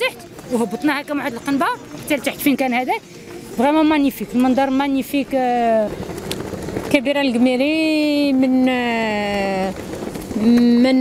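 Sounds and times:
woman speaking: 0.0s - 3.0s, 3.6s - 5.9s, 6.9s - 9.8s, 10.4s - 11.0s.

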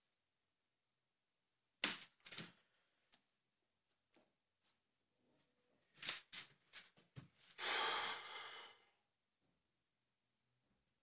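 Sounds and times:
man exhaling forcefully: 7.6s - 8.8s
man sniffing: 7.6s - 8.8s.

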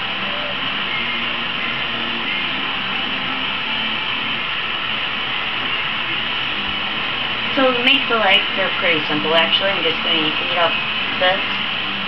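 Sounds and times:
gas torch flame hissing: 0.0s - 12.0s.

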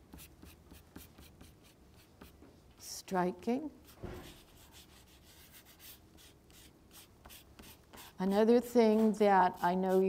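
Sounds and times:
pastel scratching on paper: 0.1s - 2.4s, 3.8s - 10.0s.

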